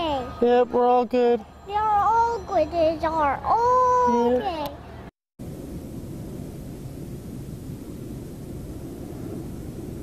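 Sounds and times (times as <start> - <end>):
low outdoor rumble: 2.7 - 10.0.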